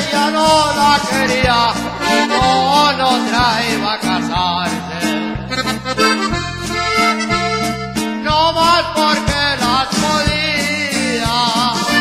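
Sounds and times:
accordion fill: 0.0s - 12.0s
repeating bass line: 0.0s - 12.0s.

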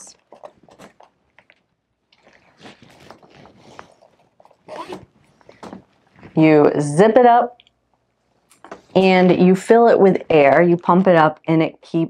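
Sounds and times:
plastic splint crinkling: 0.1s - 6.4s.

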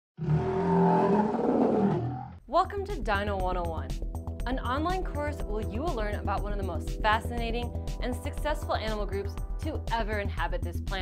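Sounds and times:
growling dinosaur roar: 0.2s - 2.4s.

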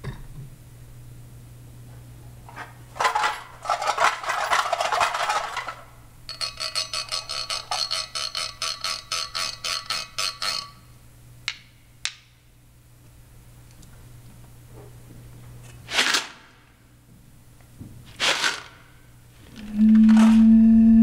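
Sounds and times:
percussion rattling clatter: 3.0s - 10.8s
rapid ringing metallic clicks: 6.3s - 10.9s.

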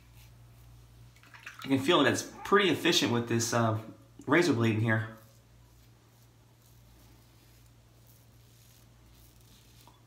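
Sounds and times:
razor scraping over stubble: 4.4s - 10.0s.

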